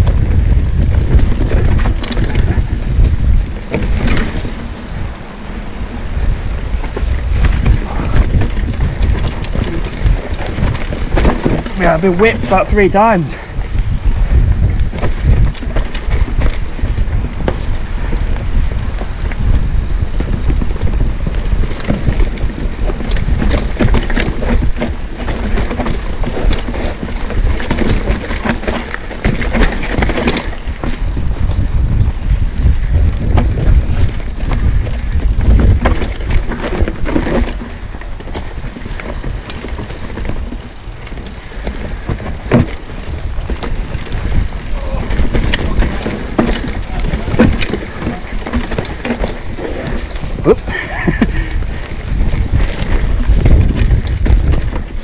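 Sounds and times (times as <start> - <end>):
bike knocks and rattles: 0.0 - 55.0
bike tyres rumbling on dirt: 0.0 - 55.0.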